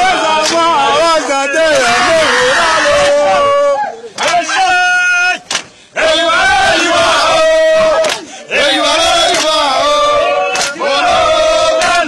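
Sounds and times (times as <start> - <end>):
man calling out a long shout: 0.0 - 5.5
group of men chanting: 0.0 - 12.0
sharp crack: 5.4 - 5.8.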